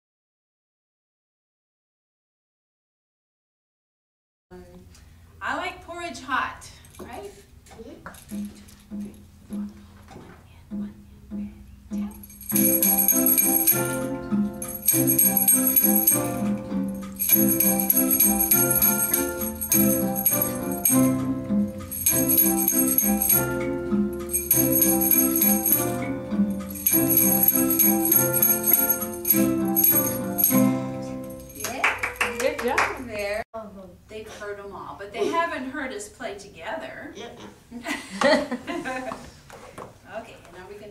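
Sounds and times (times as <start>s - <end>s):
jingling percussion: 8.1s - 9.7s, 11.9s - 32.7s
digital piano music: 10.8s - 31.6s.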